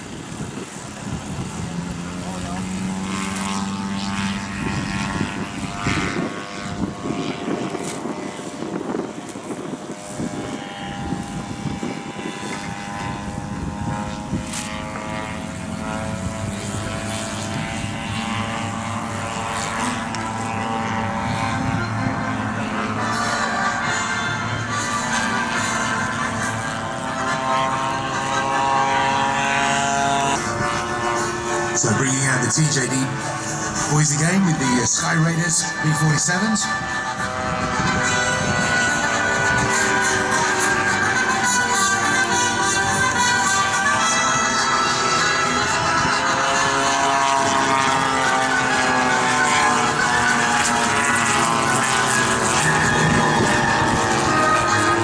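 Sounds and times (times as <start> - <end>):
model aircraft propeller engines: 0.0 - 55.0.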